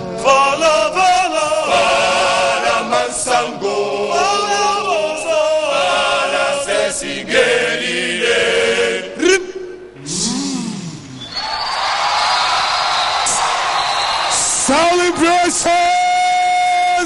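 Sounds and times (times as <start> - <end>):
group singing in harmony: 0.0 - 9.2
audience cheering and applause: 11.2 - 16.4.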